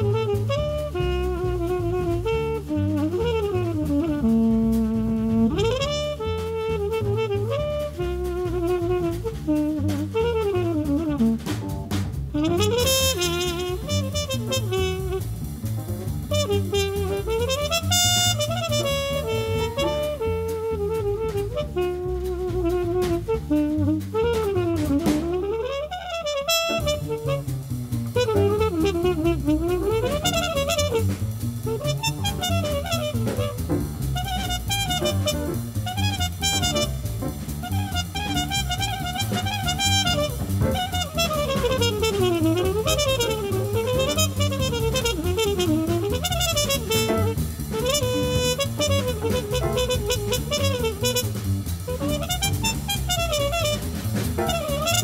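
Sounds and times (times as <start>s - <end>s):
drum kit with ride cymbal: 0.0s - 55.0s
piano: 0.0s - 55.0s
trumpet melody: 0.0s - 55.0s
walking bass: 0.0s - 55.0s.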